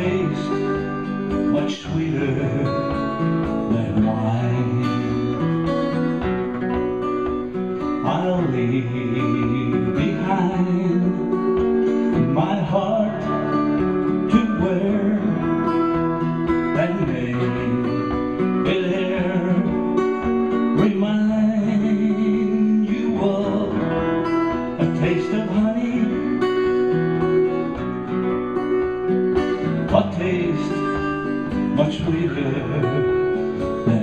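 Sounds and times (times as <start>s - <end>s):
guitar playing soft pop: 0.0s - 34.0s.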